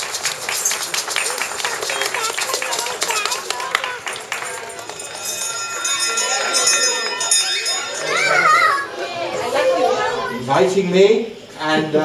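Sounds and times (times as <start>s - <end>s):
children chattering: 0.0s - 12.0s
child's high call: 7.7s - 10.4s.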